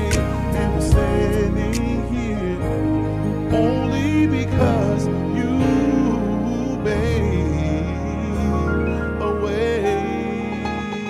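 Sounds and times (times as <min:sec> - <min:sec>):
backing music with low bass: 0:00.0 - 0:11.0
man singing: 0:00.0 - 0:11.0.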